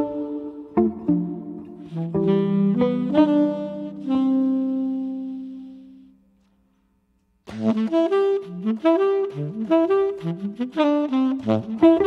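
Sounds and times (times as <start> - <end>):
tenor saxophone jazz phrase: 0.0 - 6.2, 7.5 - 12.0.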